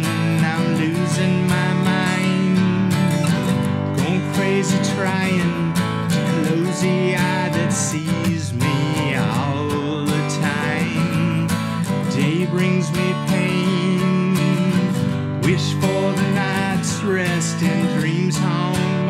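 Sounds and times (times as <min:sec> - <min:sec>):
man singing: 0:00.0 - 0:19.0
strummed acoustic guitar: 0:00.0 - 0:19.0.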